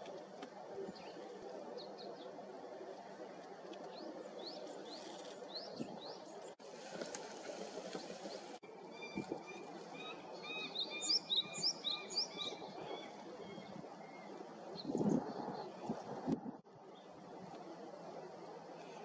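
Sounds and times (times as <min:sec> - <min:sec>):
birds chirping: 0:07.8 - 0:15.7.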